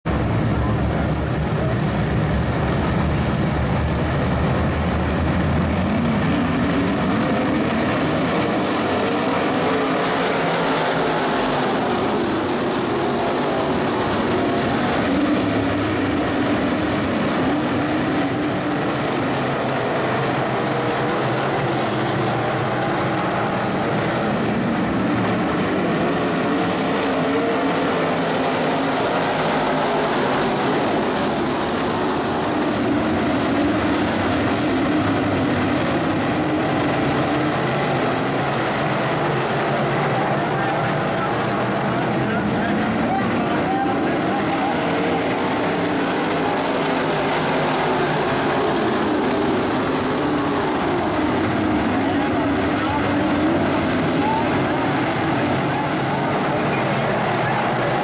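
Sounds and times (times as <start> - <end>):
race car engines droning: 0.0 - 58.0.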